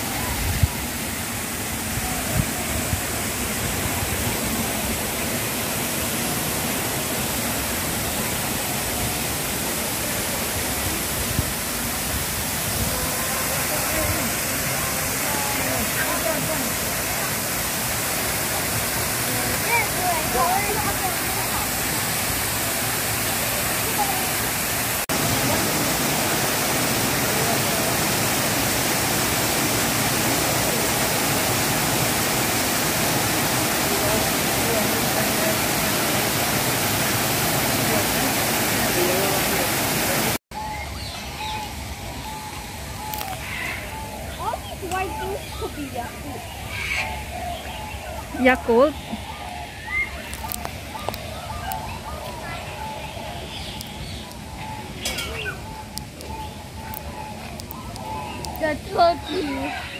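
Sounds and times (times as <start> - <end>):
waterfall rushing: 0.0 - 40.4
faint voices: 8.4 - 40.4.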